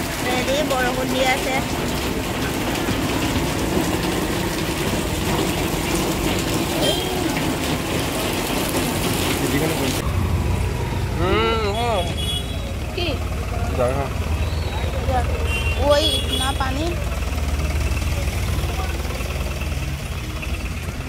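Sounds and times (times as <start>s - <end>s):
heavy rain pouring: 0.0s - 21.0s.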